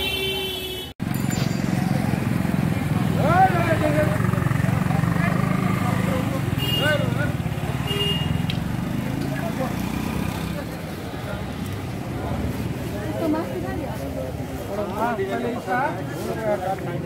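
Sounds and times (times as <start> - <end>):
vehicle horn: 0.0 - 1.0, 6.5 - 7.2, 7.8 - 8.4.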